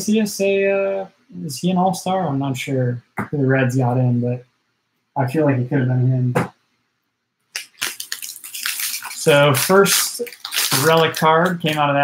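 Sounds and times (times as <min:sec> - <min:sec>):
foil wrapper crinkling: 0:07.6 - 0:11.9.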